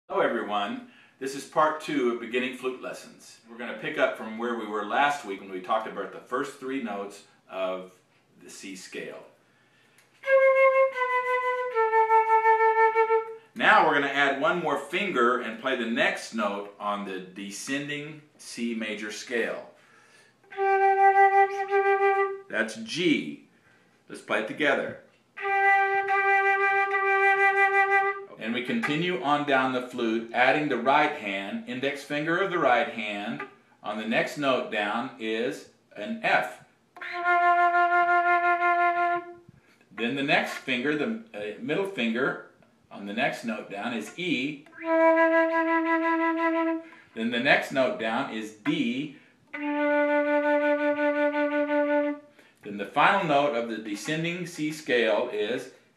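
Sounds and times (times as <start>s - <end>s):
flute playing held notes: 10.2s - 13.5s, 20.4s - 22.5s, 25.4s - 29.1s, 37.0s - 39.5s, 44.6s - 47.0s, 49.5s - 52.3s.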